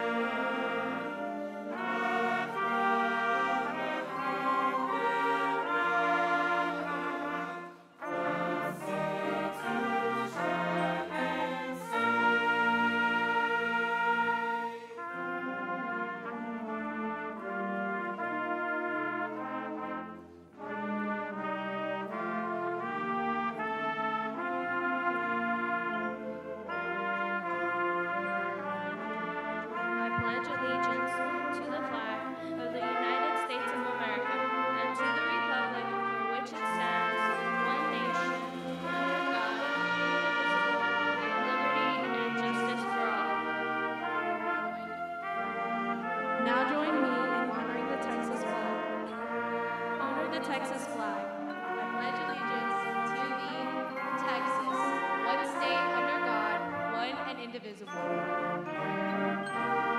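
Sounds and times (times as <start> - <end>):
brass band music: 0.0 - 59.9.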